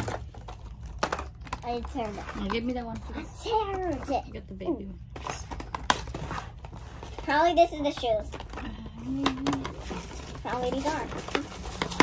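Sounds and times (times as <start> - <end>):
toy packaging rustling: 0.0 - 4.4, 5.0 - 12.0.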